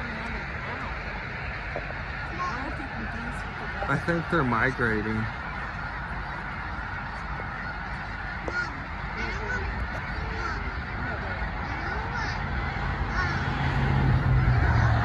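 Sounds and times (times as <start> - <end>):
geese honking: 0.0 - 15.0.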